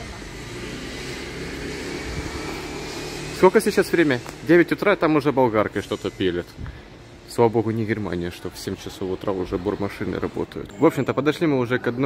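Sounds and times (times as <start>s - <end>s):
street noise: 0.0s - 12.0s.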